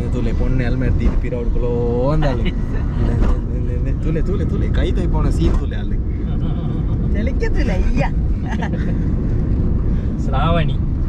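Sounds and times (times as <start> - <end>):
car driving rumble inside cabin: 0.0 - 11.0.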